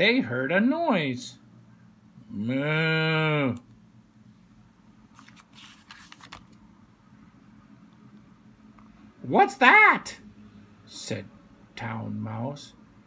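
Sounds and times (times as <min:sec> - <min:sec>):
person imitating cow moo: 0:02.2 - 0:03.6
book page turning: 0:05.1 - 0:06.6.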